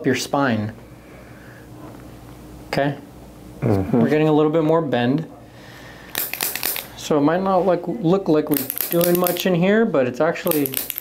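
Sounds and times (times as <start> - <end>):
rapid sharp clicks: 6.1 - 6.9, 8.5 - 9.5, 10.5 - 11.0.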